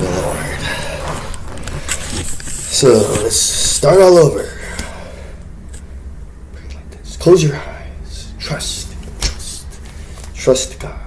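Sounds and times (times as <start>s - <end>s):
person speaking: 0.0s - 1.5s, 2.1s - 5.0s.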